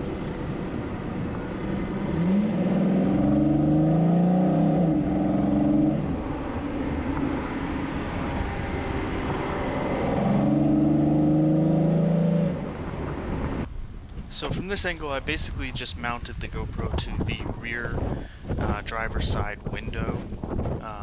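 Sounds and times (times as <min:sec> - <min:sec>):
car engine under throttle: 0:00.0 - 0:13.7
tyres on sandy dirt road: 0:00.0 - 0:21.0.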